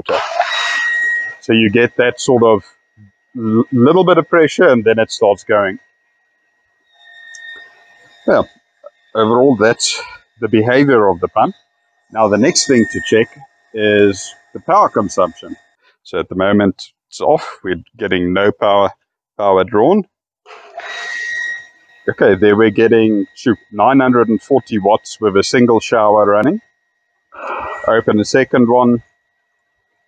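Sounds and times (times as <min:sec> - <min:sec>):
electric water pump whining: 0:00.0 - 0:16.7, 0:20.5 - 0:30.0.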